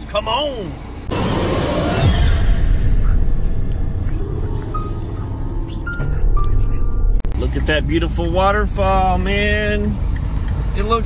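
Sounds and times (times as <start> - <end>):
deep steady rumble: 0.8 - 11.0
eerie music: 1.1 - 7.6.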